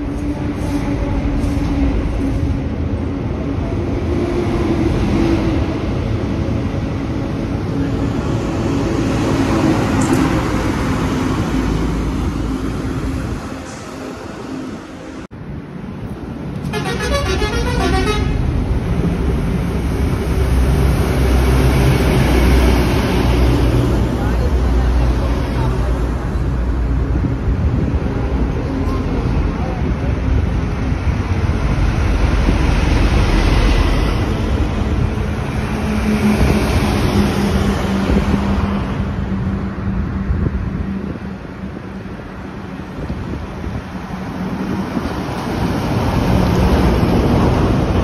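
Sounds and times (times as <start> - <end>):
truck engines hum: 4.9 - 48.0
rapidly pulsing vehicle horn: 16.7 - 18.4.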